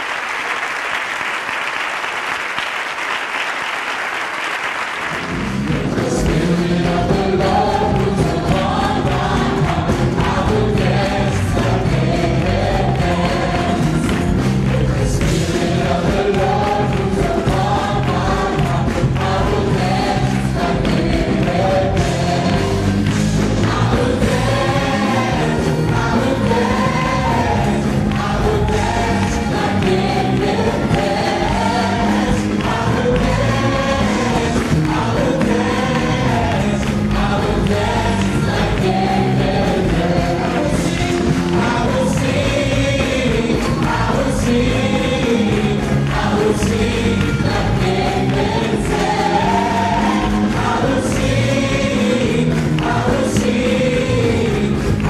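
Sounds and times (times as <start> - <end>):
group singing gospel song: 5.1 - 55.0.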